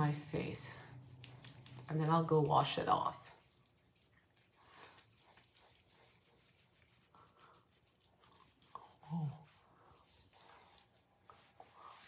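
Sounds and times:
fingertips squishing on skin: 0:00.8 - 0:12.0.

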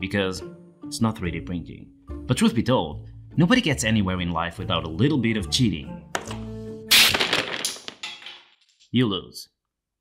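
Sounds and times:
wooden block tower crashing: 0:06.2 - 0:08.7
wooden blocks clattering: 0:07.0 - 0:08.8.

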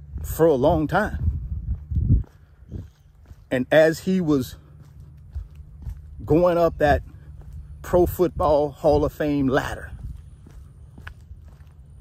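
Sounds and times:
footsteps walking: 0:00.0 - 0:12.0
low steady rumble: 0:00.0 - 0:12.0.

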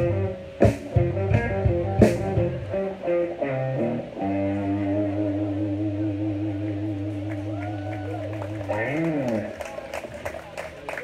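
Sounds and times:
electric guitars and bass chord: 0:00.0 - 0:09.6.

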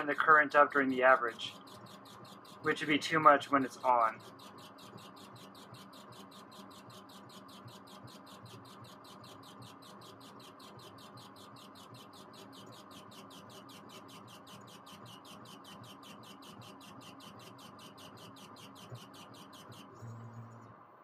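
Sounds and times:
laser engraver head chirping: 0:00.0 - 0:20.7
steady machine hum: 0:00.0 - 0:21.0.

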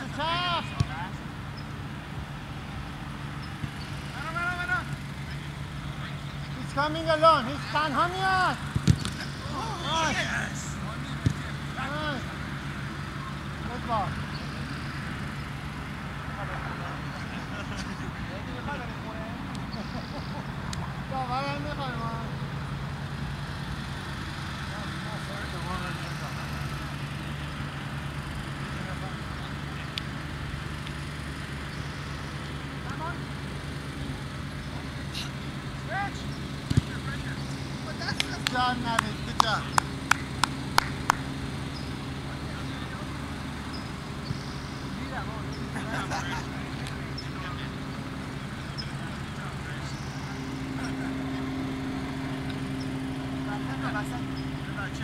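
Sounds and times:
players shouting: 0:00.0 - 0:01.3, 0:02.9 - 0:14.6
steady low hum: 0:00.0 - 0:55.0.

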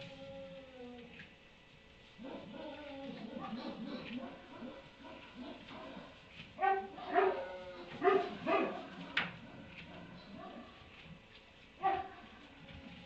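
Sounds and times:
animal calls: 0:02.2 - 0:06.0.

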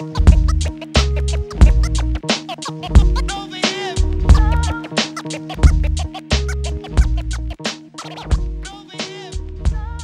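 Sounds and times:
turntable scratching: 0:00.0 - 0:09.3
instrumental hip hop beat: 0:00.0 - 0:10.0.

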